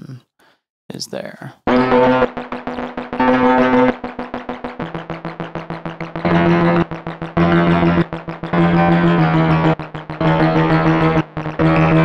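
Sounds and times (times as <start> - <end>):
stuttering synthesizer tone: 1.7 - 12.0.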